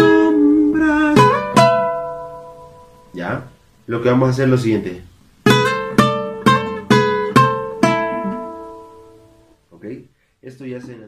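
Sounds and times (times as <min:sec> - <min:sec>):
nylon guitar plucked strokes: 0:00.0 - 0:03.6, 0:05.4 - 0:09.5.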